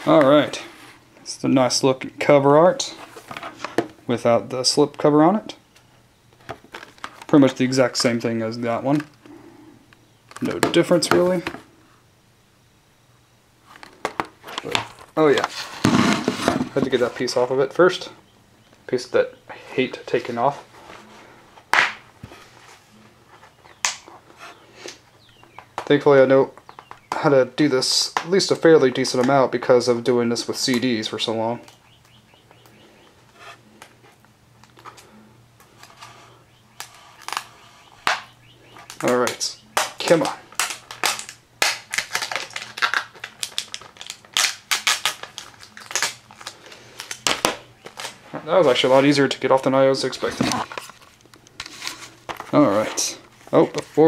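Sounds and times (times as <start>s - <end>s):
plastic tape snapping: 36.8s - 48.2s.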